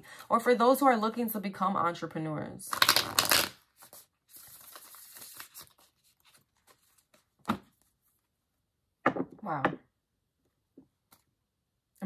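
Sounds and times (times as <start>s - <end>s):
cards being shuffled: 2.7s - 7.9s.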